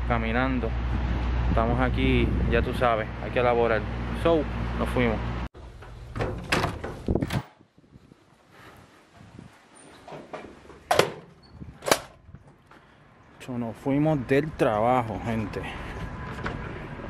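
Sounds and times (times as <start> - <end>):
glass door swinging: 5.8 - 7.6
loud door clacks: 6.1 - 7.5.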